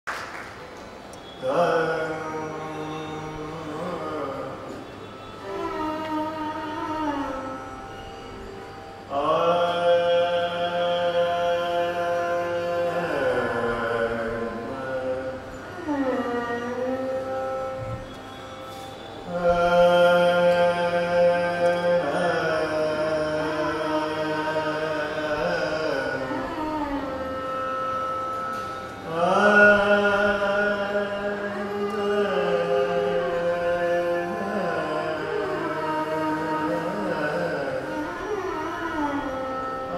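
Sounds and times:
man singing long note: 0:01.2 - 0:07.7, 0:09.1 - 0:18.2, 0:18.9 - 0:28.0, 0:29.0 - 0:39.9.

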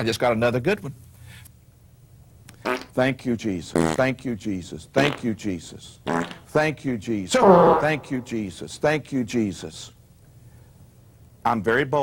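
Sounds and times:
low drawn-out fart: 0:06.1 - 0:06.5, 0:07.4 - 0:08.3.

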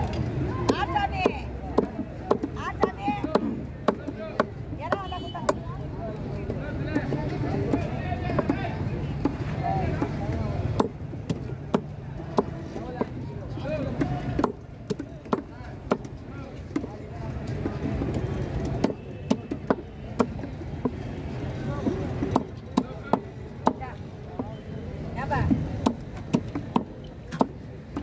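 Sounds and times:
knife chopping on wooden block: 0:25.5 - 0:28.0.

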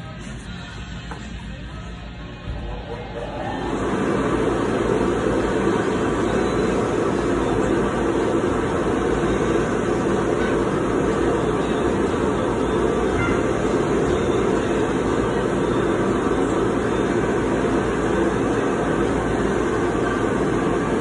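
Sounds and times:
air blower rushing: 0:02.6 - 0:21.0.

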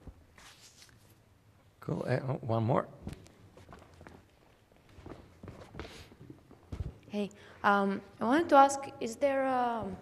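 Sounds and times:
soft footsteps on floor: 0:03.0 - 0:07.1.

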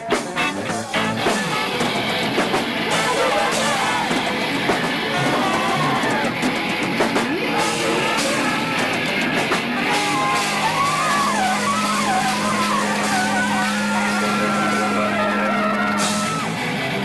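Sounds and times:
distorted electric guitars: 0:00.0 - 0:17.0
drums: 0:00.0 - 0:17.0.

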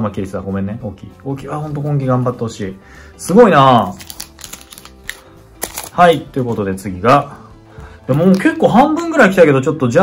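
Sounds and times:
quiet background music: 0:00.0 - 0:10.0
trading cards clicking and tapping: 0:03.9 - 0:06.7.

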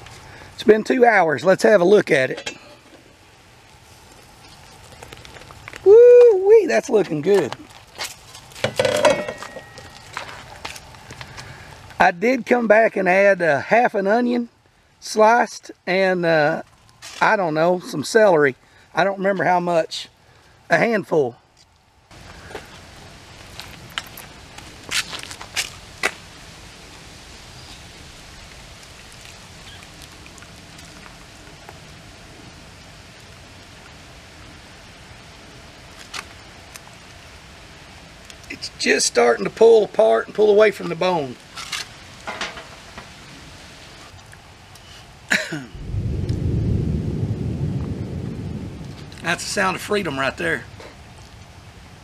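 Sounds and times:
water bubbling at a boil: 0:03.3 - 0:05.9, 0:27.9 - 0:34.6.

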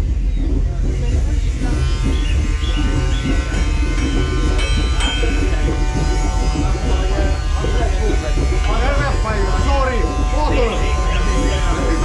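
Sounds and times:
electric blower motor buzz: 0:00.0 - 0:12.0
people's voices: 0:00.0 - 0:12.0.

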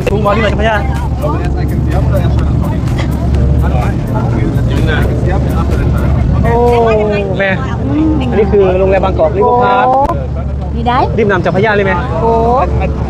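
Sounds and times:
boat engine rumble: 0:00.0 - 0:13.0
passengers chattering: 0:00.0 - 0:13.0.

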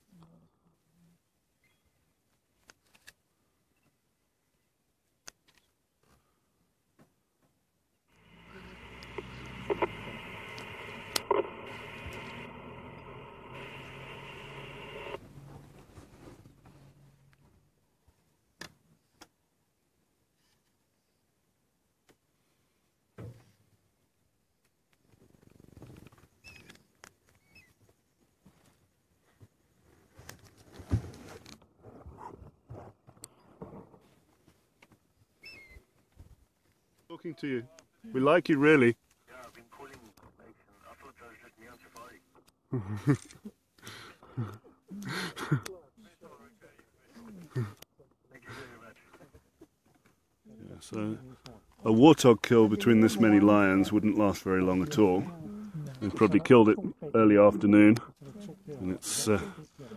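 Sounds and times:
radio static hiss: 0:08.1 - 0:15.5, 0:37.5 - 0:42.4, 0:45.1 - 0:49.4, 0:51.9 - 0:55.3
sharp clicks: 0:08.2 - 0:15.2
short chirping calls: 0:35.4 - 0:35.8.

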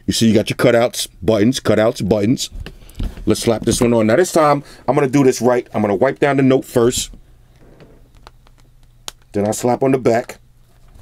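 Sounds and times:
hand rubbing plastic case: 0:05.2 - 0:09.6.

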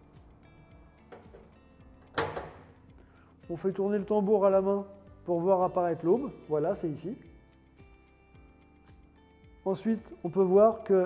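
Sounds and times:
metallic latch snap: 0:01.1 - 0:02.8
washing machine flap clicks: 0:02.0 - 0:02.8.

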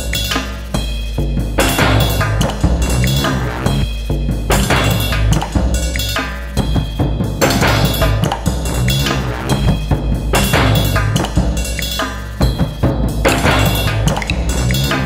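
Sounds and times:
drum and percussion hits: 0:00.0 - 0:15.0
continuous low bass: 0:01.2 - 0:06.0, 0:06.6 - 0:11.8, 0:12.5 - 0:15.0.

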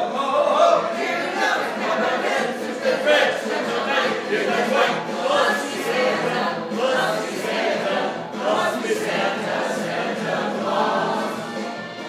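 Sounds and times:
group singing a carol: 0:00.0 - 0:12.0.

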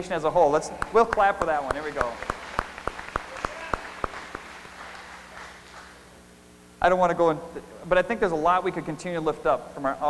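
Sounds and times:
congregation applauding: 0:00.8 - 0:06.1.

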